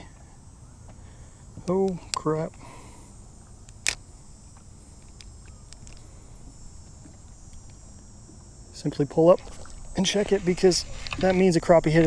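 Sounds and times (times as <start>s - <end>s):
faint high hiss: 0.0s - 12.0s.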